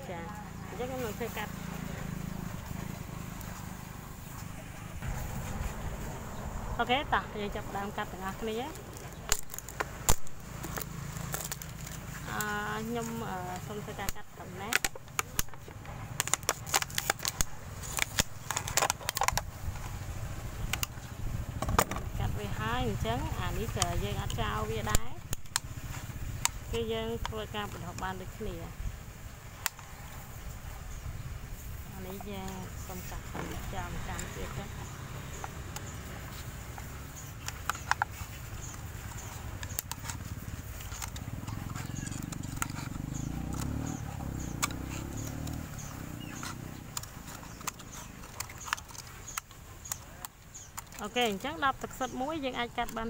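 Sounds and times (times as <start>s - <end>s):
low engine-like rumble: 0.0s - 9.7s
sharp crackling clicks: 8.1s - 22.2s, 23.0s - 28.5s, 32.0s - 53.0s
scissors cutting plastic bottle: 8.2s - 19.8s, 32.1s - 53.0s
scissors snipping plastic bottle: 9.0s - 19.5s.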